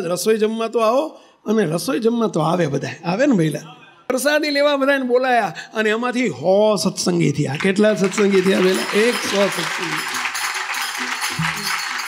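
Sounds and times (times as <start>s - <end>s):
audience applauding: 7.6s - 12.0s.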